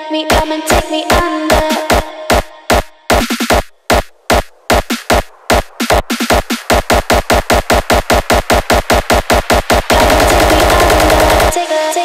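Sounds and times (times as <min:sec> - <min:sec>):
hardstyle kick drum: 0:00.3 - 0:11.6.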